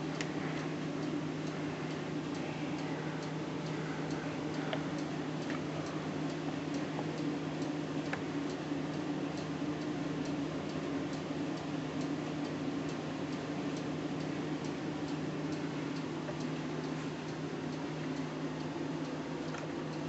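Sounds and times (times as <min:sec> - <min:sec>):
faint regular ticking: 0:00.0 - 0:20.0
steady low hum: 0:00.0 - 0:20.0.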